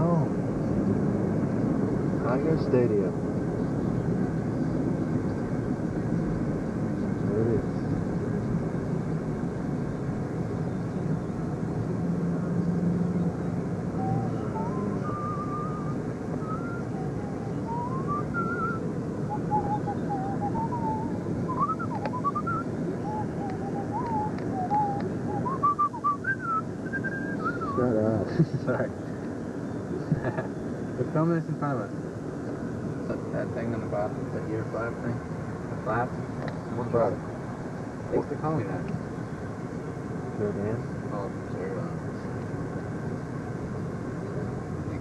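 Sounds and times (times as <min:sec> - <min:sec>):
car cabin road noise: 0:00.0 - 0:45.0
person whistling a tune: 0:14.0 - 0:17.1, 0:17.7 - 0:27.8.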